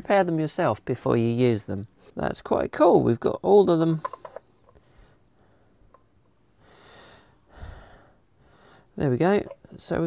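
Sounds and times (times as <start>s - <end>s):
soft breathing: 4.1s - 9.0s.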